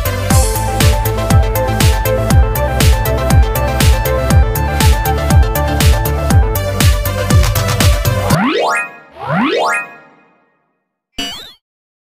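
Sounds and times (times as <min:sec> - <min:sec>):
music: 0:00.0 - 0:11.1
rising cartoon sound effects: 0:08.3 - 0:10.4.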